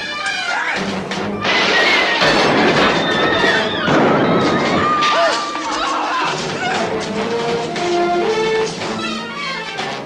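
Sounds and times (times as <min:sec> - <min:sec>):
loud crash of noise: 0:01.4 - 0:05.3
dramatic soundtrack music: 0:05.3 - 0:10.0.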